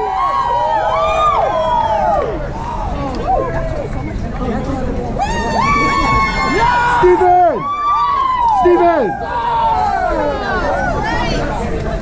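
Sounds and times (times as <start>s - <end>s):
group chatter: 0.0s - 12.0s.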